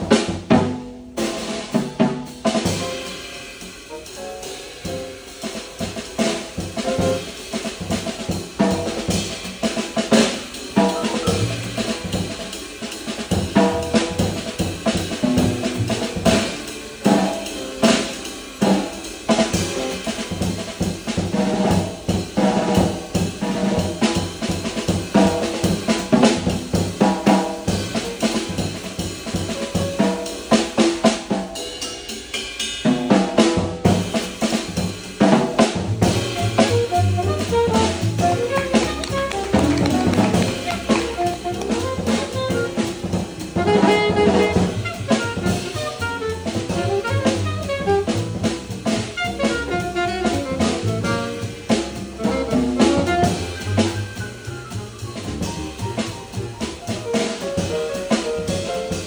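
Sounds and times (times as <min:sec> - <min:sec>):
drum kit: 0:00.0 - 0:59.0
grand piano: 0:00.0 - 0:59.0
upright bass line: 0:10.8 - 0:12.0, 0:35.9 - 0:57.0.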